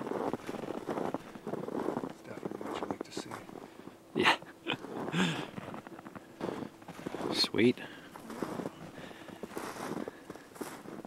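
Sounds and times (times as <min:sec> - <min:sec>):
footsteps crunching through snow: 0:00.0 - 0:04.0, 0:04.8 - 0:11.0.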